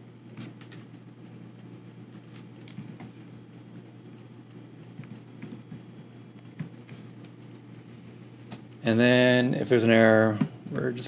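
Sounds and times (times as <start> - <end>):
steady low hum: 0.0 - 11.0
computer keyboard keystrokes: 2.0 - 3.1, 5.0 - 5.8.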